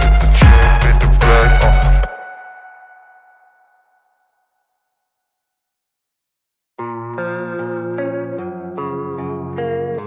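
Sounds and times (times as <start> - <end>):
echoing electronic music: 0.0 - 3.6
plucked guitar notes: 6.8 - 10.0.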